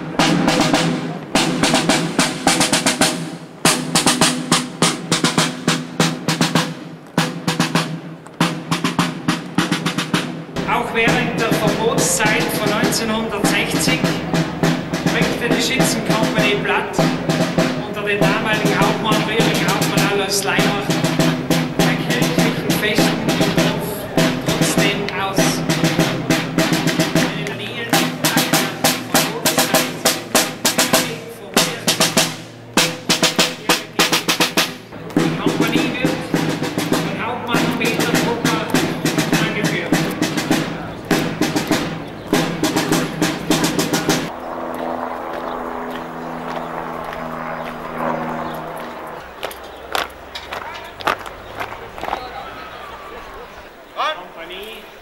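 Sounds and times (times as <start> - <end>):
snare drum: 0.0 - 44.3
marching band playing: 0.0 - 55.0
bass drum: 0.1 - 44.3.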